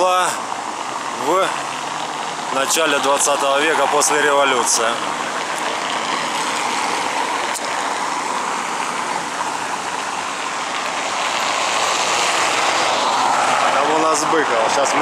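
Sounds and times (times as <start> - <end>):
street traffic hiss: 0.0 - 15.0
car driving past on paving: 1.6 - 15.0.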